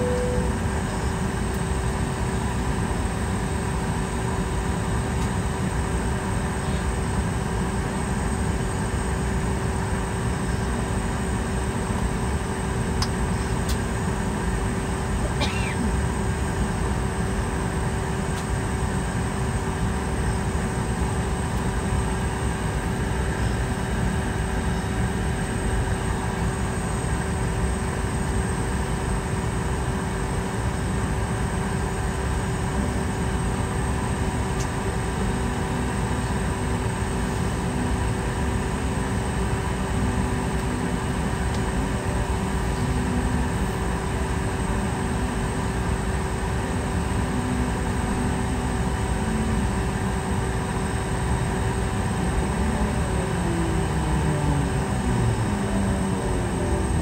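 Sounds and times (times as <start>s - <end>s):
airplane cabin air whine: 0.0s - 57.0s
jet engine spooling up: 50.5s - 57.0s.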